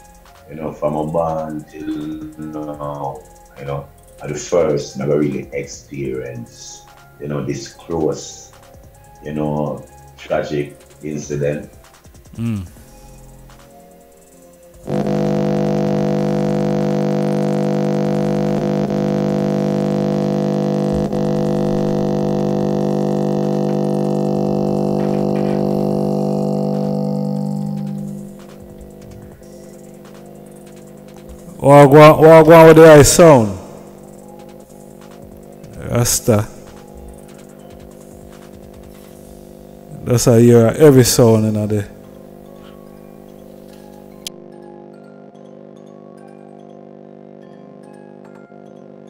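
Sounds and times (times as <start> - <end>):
loud droning vibrating tone: 0.0 - 5.2, 14.8 - 44.4, 45.2 - 49.0.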